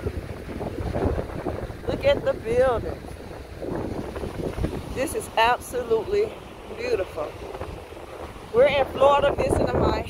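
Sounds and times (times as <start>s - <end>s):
ocean surf: 0.0s - 10.0s
wind buffeting microphone: 0.0s - 10.0s.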